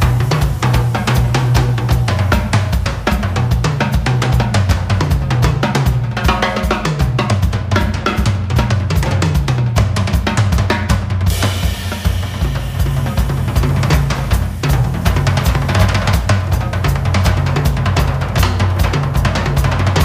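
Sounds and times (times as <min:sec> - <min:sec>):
jazz drum kit: 0:00.0 - 0:20.0
walking electric bass line: 0:11.3 - 0:18.6.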